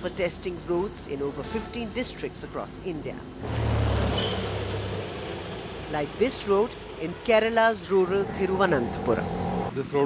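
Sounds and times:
road noise hiss: 0.0 - 10.0.

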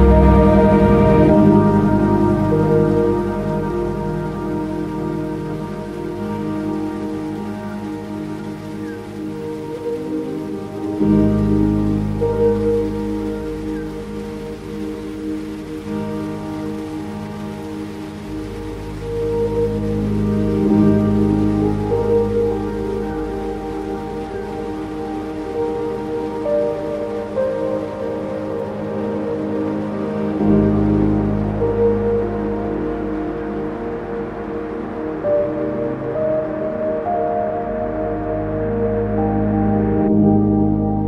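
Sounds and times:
ambient music with held chords: 0.0 - 41.0
rain-like hiss: 0.0 - 41.0.

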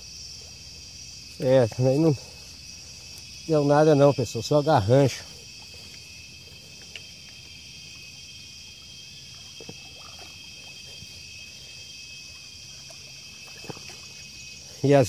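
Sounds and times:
insects chorus: 0.0 - 15.0.

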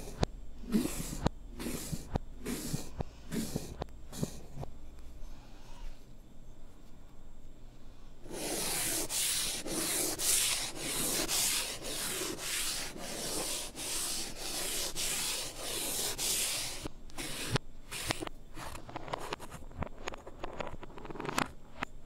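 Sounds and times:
chalk tapping on blackboard: 0.0 - 4.4, 8.3 - 19.5
reversed eraser rubbing blackboard: 0.0 - 4.7, 8.2 - 19.6.

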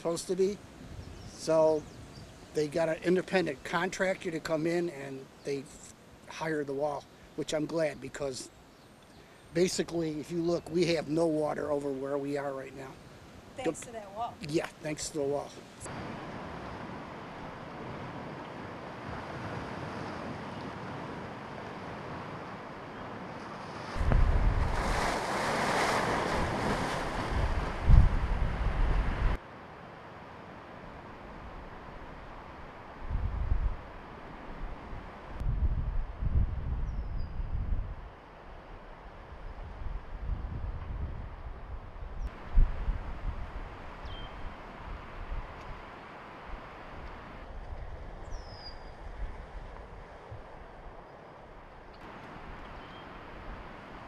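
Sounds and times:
wind gusting against microphone: 0.0 - 4.6, 9.5 - 29.4, 30.2 - 54.0
choppy lake waves: 13.6 - 35.4.

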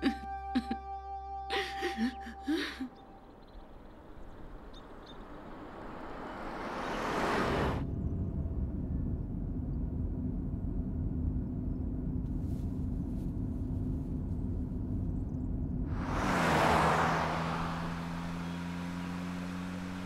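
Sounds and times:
road and engine rumble in car: 3.0 - 20.0
rush of noise: 15.9 - 19.9.

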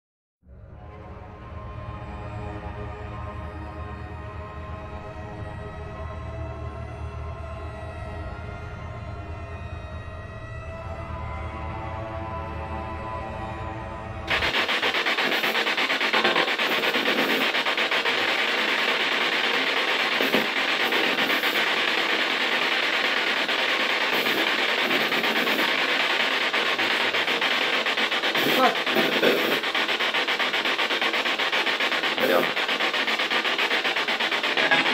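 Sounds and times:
loud rasping noise: 14.3 - 34.9.

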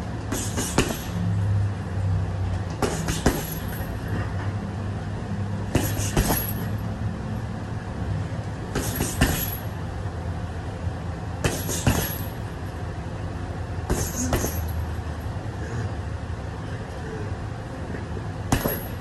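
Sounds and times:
steady low hum: 0.0 - 19.0
boxing gloves punching heavy bag: 0.2 - 1.2, 2.7 - 4.2, 5.6 - 6.8, 8.7 - 9.8, 11.4 - 12.4, 13.9 - 14.8, 18.5 - 19.0.

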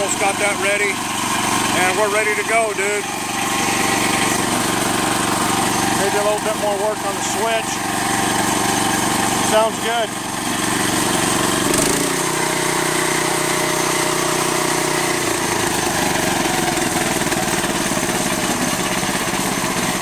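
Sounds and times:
single-cylinder engine running: 0.0 - 20.0.

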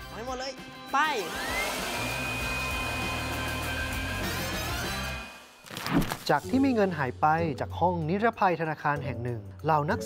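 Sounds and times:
electric blower motor whine: 1.2 - 5.7.

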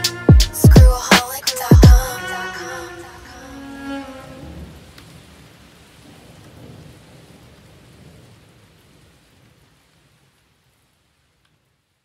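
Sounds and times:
piano and drums beat: 0.0 - 2.2
rain: 2.8 - 12.0
low thunder rumbles: 4.4 - 9.7.

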